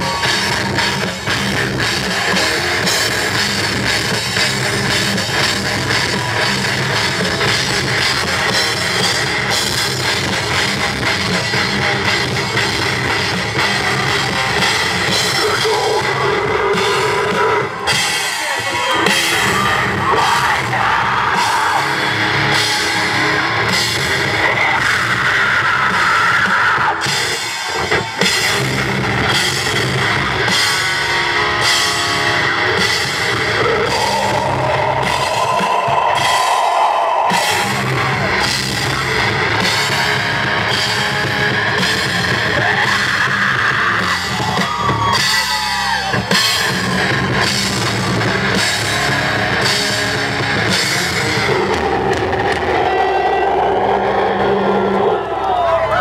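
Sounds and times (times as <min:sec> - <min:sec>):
heavy metal band playing: 0:00.0 - 0:56.0.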